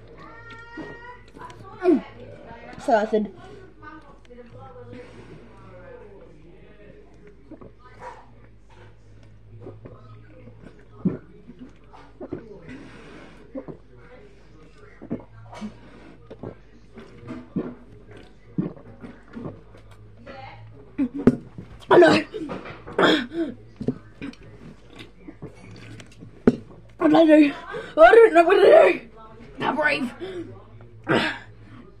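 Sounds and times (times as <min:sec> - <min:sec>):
person gulping water: 0:07.5 - 0:07.8, 0:17.6 - 0:19.6.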